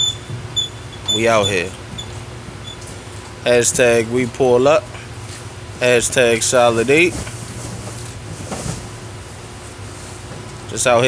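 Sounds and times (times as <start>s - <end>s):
low mechanical hum: 0.0s - 11.0s
outdoor background hiss: 0.0s - 11.0s.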